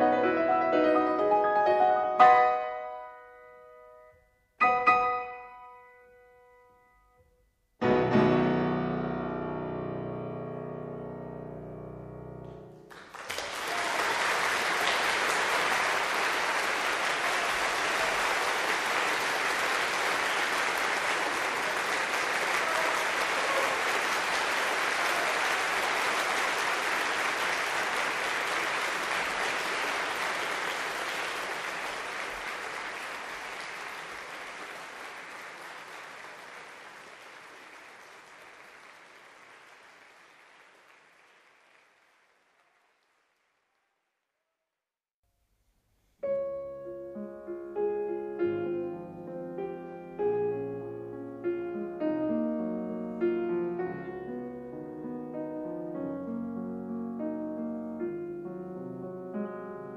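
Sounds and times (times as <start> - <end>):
audience applauding: 12.8 - 44.0.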